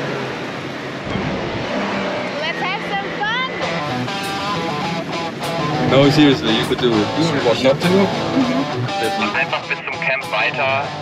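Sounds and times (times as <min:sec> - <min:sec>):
vehicle road and engine noise: 0:00.0 - 0:11.0
guitar music: 0:01.1 - 0:11.0.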